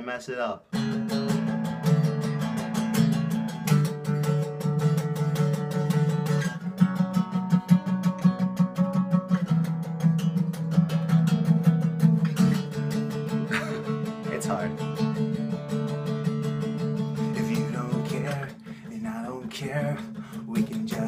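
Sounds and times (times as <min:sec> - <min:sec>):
acoustic guitar strumming: 0:00.1 - 0:21.0.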